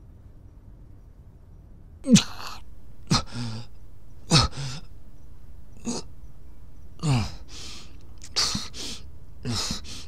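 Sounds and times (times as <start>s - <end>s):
man gasping breaths: 2.5s - 6.2s, 6.9s - 10.0s.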